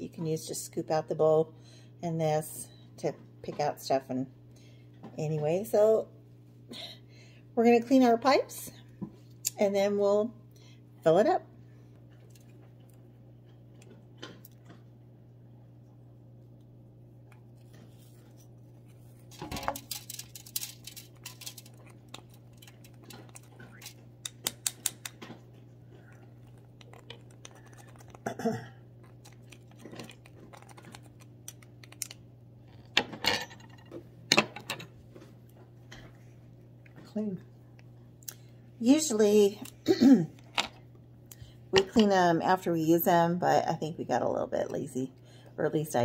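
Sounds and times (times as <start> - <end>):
steady low hum: 0.0 - 46.0
person clearing throat: 28.2 - 28.8, 39.8 - 40.3.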